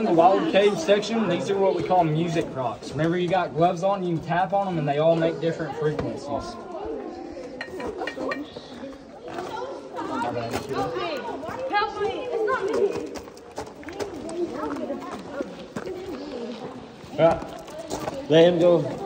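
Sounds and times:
overlapping chatter of people: 0:00.0 - 0:19.0.

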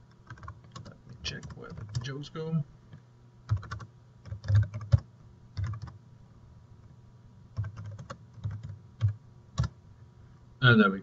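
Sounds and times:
typing on a computer keyboard: 0:00.2 - 0:02.1, 0:03.5 - 0:06.0, 0:07.6 - 0:09.8.

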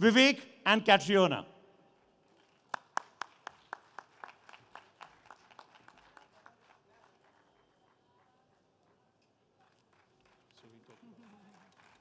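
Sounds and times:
man clapping hands: 0:02.7 - 0:06.8.

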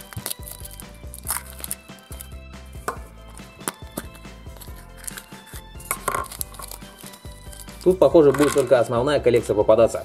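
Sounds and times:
foil wrapper crinkling: 0:00.0 - 0:02.4, 0:03.3 - 0:08.8
chocolate shell cracking: 0:00.0 - 0:08.8
soft background music: 0:00.0 - 0:10.0.

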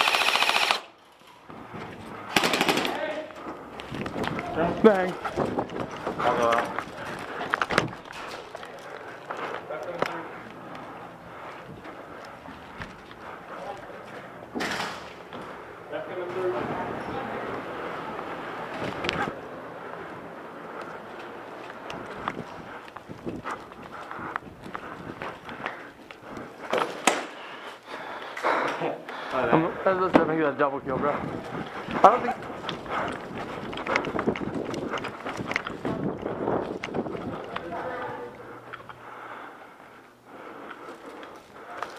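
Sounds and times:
footsteps: 0:01.0 - 0:41.9
muffled voices: 0:02.1 - 0:22.8, 0:28.4 - 0:34.2, 0:34.8 - 0:39.6, 0:40.3 - 0:41.9.

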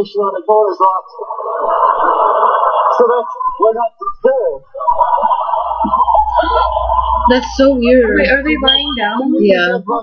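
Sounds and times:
studio audience laughing: 0:01.4 - 0:03.4, 0:04.7 - 0:07.3.

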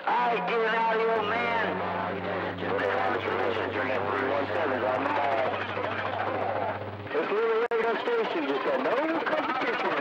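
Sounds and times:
distorted radio speech: 0:00.0 - 0:10.0
steady low hum: 0:01.0 - 0:07.6.

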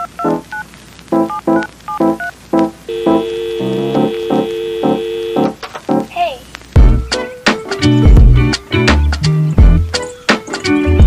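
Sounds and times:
held organ-like keyboard chord: 0:02.6 - 0:05.6.

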